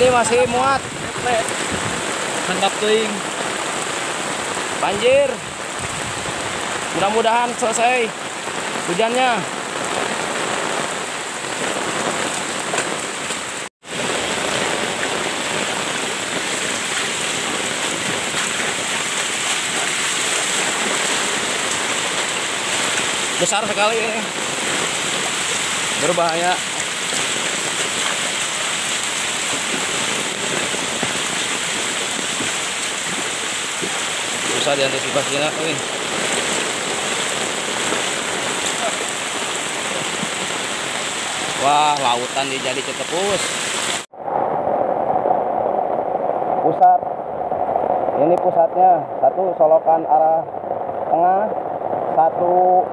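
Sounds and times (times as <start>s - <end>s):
floodwater rushing: 0.0s - 48.2s
heavy rain: 0.0s - 52.9s.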